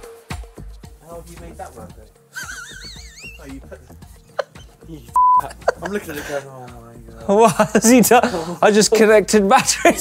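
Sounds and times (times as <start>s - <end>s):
background music: 0.0s - 10.0s
loud steady beep: 5.2s - 5.5s.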